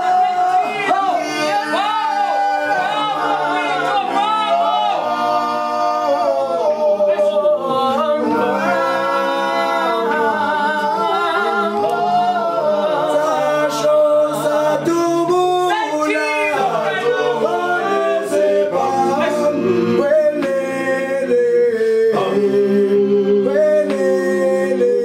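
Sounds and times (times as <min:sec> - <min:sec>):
men singing in harmony: 0:00.0 - 0:25.0.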